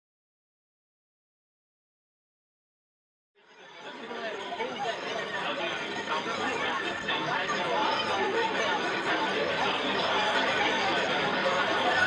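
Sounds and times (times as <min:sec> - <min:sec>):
overlapping voices chattering: 0:03.4 - 0:12.0.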